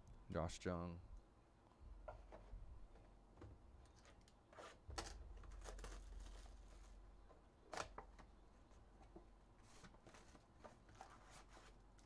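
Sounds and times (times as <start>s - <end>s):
cardboard box and cards rustling: 3.9s - 7.0s, 7.7s - 12.0s.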